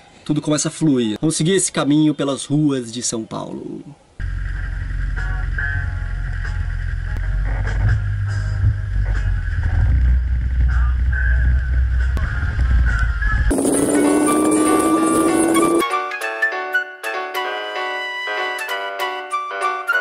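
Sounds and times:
van engine and road noise: 4.2s - 12.9s.

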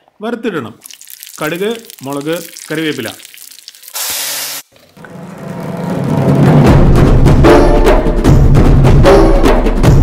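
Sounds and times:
hot oil sizzling in a pot: 0.8s - 4.7s
music: 5.0s - 10.0s.

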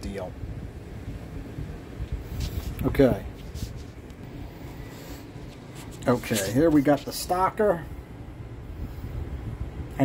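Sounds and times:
steady low hum: 0.0s - 10.0s
faint scratchy rubbing: 2.3s - 7.4s.

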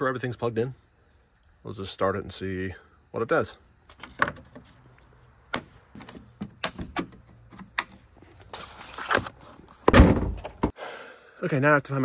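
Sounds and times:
car hood slammed shut: 9.9s - 10.4s.

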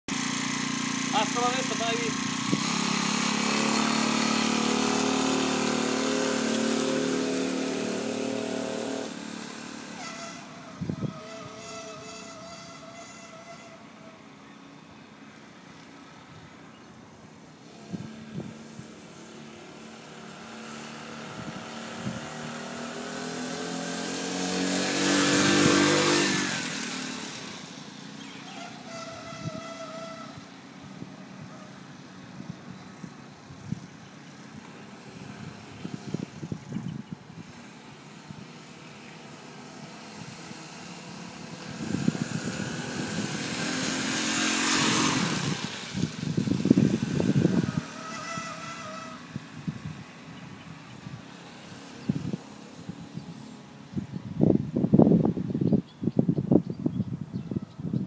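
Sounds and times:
small motorbike engine passing: 0.1s - 58.0s.

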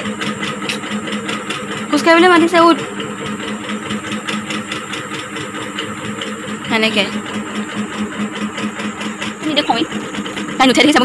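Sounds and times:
low pulsing mechanical hum: 0.0s - 11.0s.

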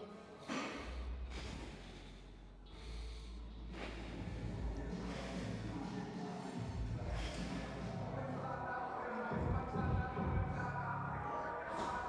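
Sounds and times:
man breathing hard: 0.3s - 8.7s, 11.5s - 12.0s
steady low hum: 0.3s - 12.0s.

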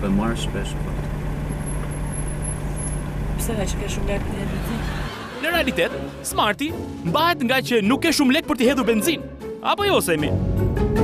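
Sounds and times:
car engine idling: 0.0s - 5.4s.

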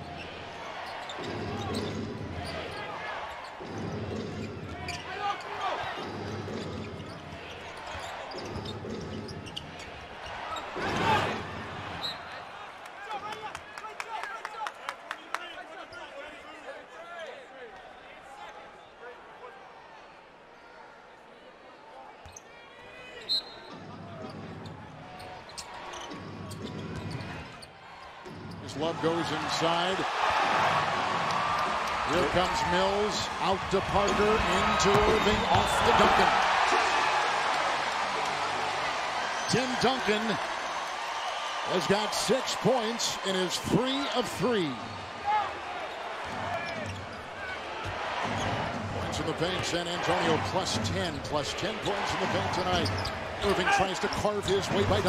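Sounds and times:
crowd noise: 0.0s - 55.0s
ball bouncing on wooden court: 34.8s - 35.8s.

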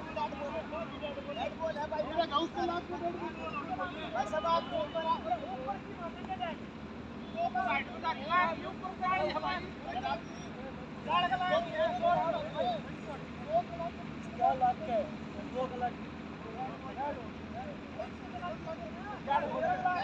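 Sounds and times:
distant men talking and calling: 0.0s - 20.0s.

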